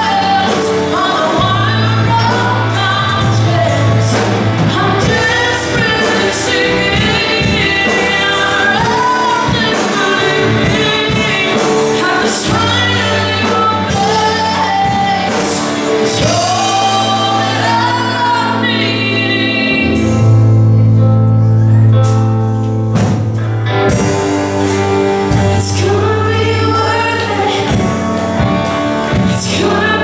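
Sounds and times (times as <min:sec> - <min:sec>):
person singing: 0:00.0 - 0:22.2, 0:25.2 - 0:30.0
band playing slow song: 0:00.0 - 0:30.0.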